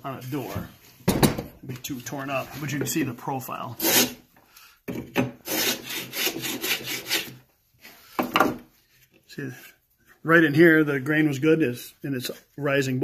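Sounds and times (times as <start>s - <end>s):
wooden hand plane scraping wood: 3.8s - 4.2s, 5.4s - 8.0s.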